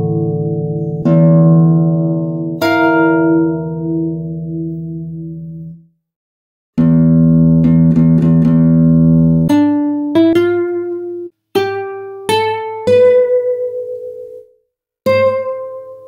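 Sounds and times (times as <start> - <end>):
classical guitar playing: 0.0 - 5.8, 6.8 - 16.0.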